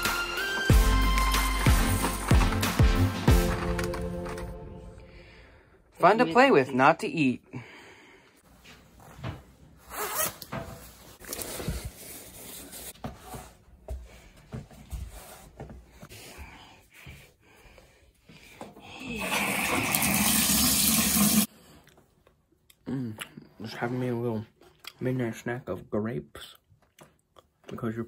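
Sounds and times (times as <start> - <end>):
water running into bathtub: 19.0 - 21.5.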